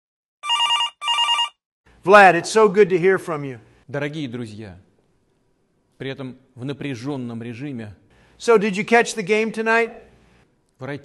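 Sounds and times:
telephone ringing: 0.4 - 1.6.

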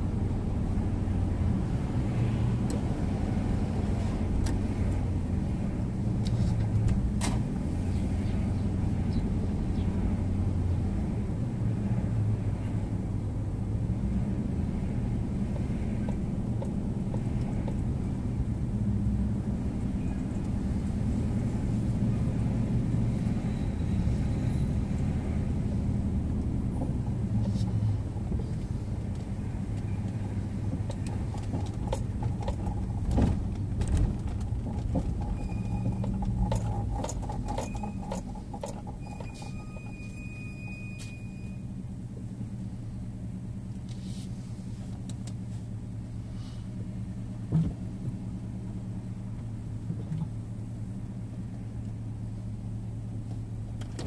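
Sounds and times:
car engine rumble: 0.0 - 54.0
road noise: 0.0 - 54.0.

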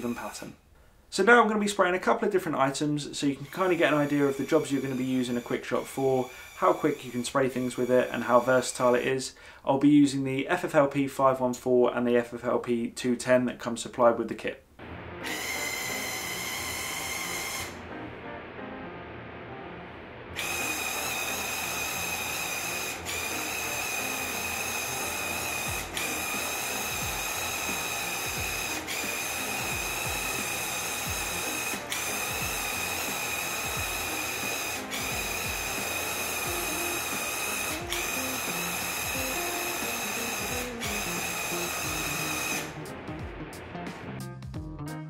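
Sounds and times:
paint sprayer whining: 3.3 - 9.1, 15.2 - 17.8, 20.4 - 42.8.

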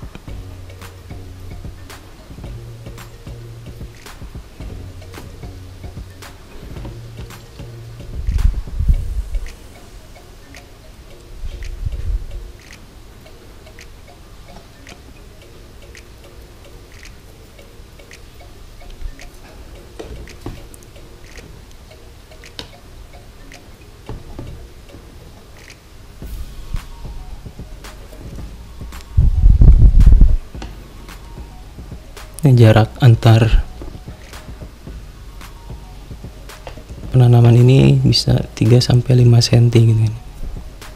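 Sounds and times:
low thumps: 0.0 - 9.6, 26.2 - 37.7
quiet background music: 0.0 - 40.9.

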